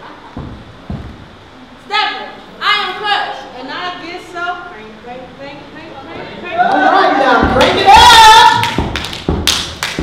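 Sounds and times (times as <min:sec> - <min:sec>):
loud uneven thumps: 0:00.2 - 0:01.6, 0:07.3 - 0:10.0.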